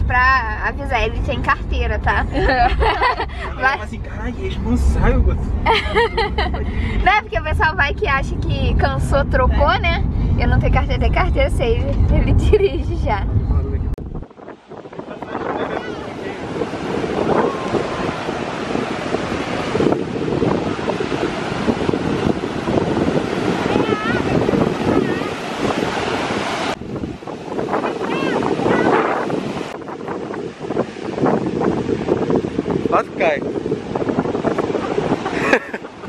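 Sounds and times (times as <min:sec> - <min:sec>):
wind buffeting microphone: 0:00.0 - 0:36.0
ocean surf breaking on sand: 0:02.1 - 0:04.0, 0:14.2 - 0:36.0.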